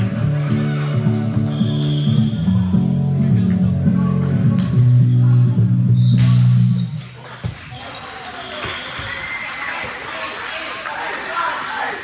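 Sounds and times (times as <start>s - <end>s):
voices echoing in a gym hall: 0.0s - 12.0s.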